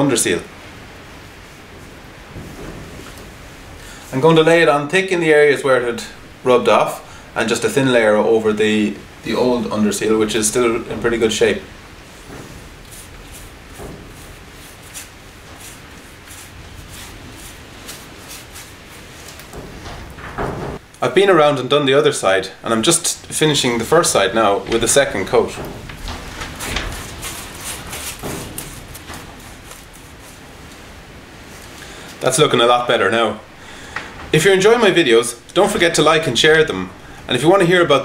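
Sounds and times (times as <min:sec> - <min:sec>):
low room rumble: 0:00.0 - 0:38.0
brush swishes: 0:11.4 - 0:19.8, 0:26.2 - 0:31.8
paintbrush scraping and tapping: 0:12.1 - 0:20.0, 0:24.6 - 0:30.9.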